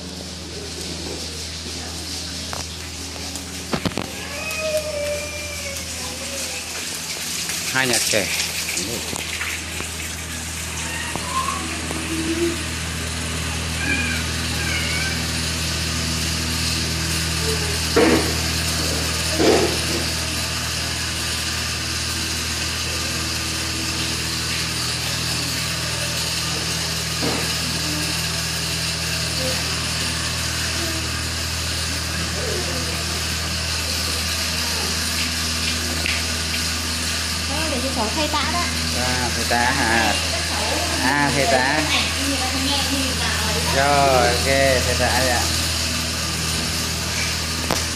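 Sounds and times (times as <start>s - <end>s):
steady low room hum: 0.0s - 47.9s
small children whimpering: 4.1s - 6.6s, 13.6s - 15.3s.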